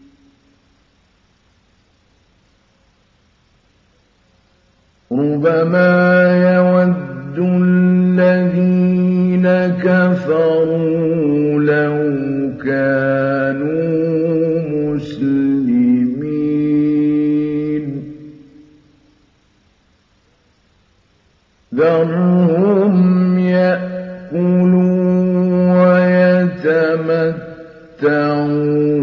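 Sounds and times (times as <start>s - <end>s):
man reciting melodically: 5.1s - 18.4s, 21.7s - 29.0s.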